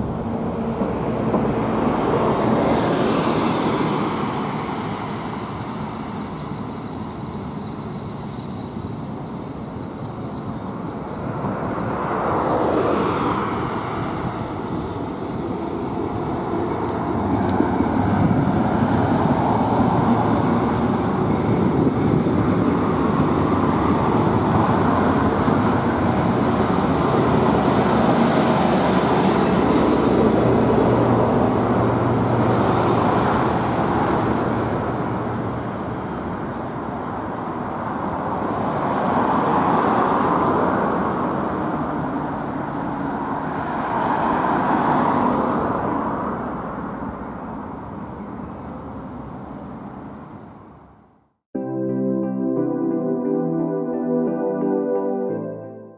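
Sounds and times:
street traffic passing: 0.0 - 55.9.

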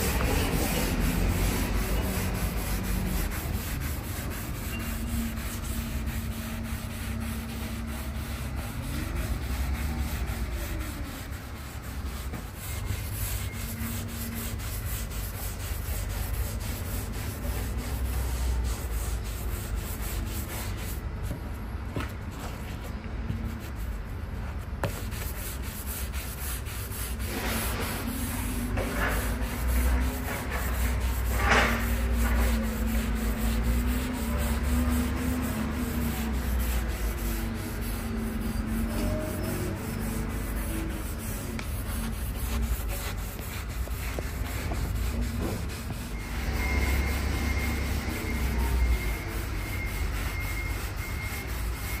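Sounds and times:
pad scrubbing wood board: 0.0 - 21.0, 24.8 - 48.6
hand rubbing wood surface: 0.0 - 52.0.

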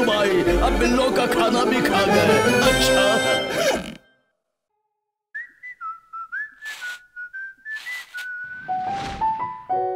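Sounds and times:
whistled tune: 5.3 - 9.4.

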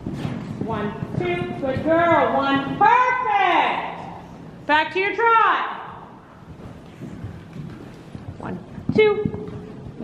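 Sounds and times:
hooves trotting on sand: 0.0 - 3.5, 5.9 - 10.0.

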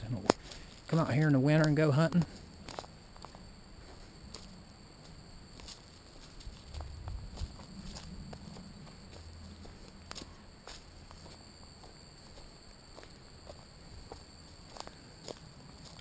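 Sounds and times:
footsteps on dry leaves and twigs: 0.3 - 16.0.

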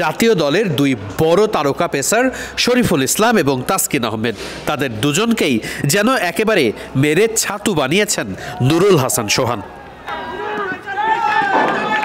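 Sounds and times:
people shouting: 10.0 - 12.0.

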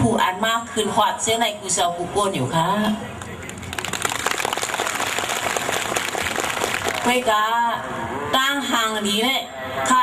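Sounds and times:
audience applauding: 3.2 - 7.4.

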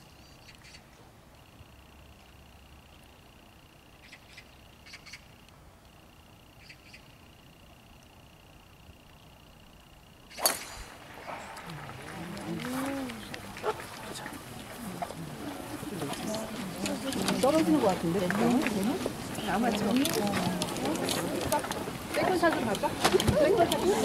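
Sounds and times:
faint high whine: 0.0 - 24.0
golf club striking ball: 10.3 - 11.6
voices: 10.4 - 24.0.

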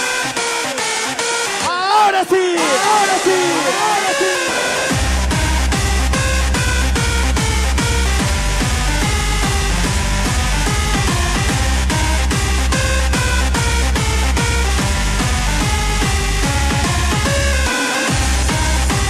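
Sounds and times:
deep bass: 4.9 - 19.0.

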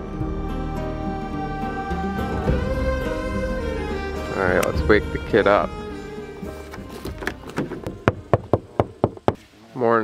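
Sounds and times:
rapid knocking by hand: 7.6 - 9.4.

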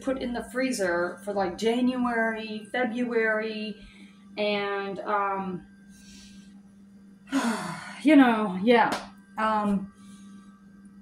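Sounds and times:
woman sighing: 7.3 - 8.0.

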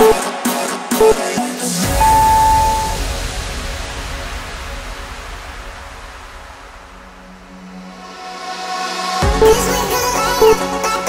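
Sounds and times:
electronic timer beep: 0.0 - 0.2, 1.9 - 3.0
electronic dance music: 0.0 - 3.0.

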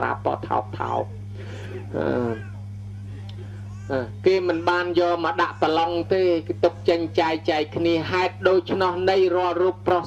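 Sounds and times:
low electrical hum: 0.0 - 10.0.

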